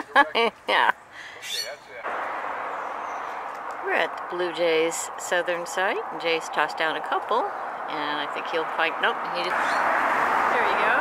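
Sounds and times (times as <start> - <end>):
outdoor background hiss: 0.0 - 11.0
bird chirp: 1.0 - 2.0, 2.6 - 3.8.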